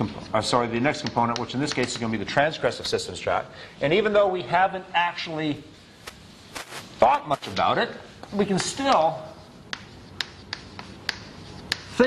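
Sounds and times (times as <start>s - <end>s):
chalk tapping on chalkboard: 1.0s - 2.1s, 6.1s - 12.0s.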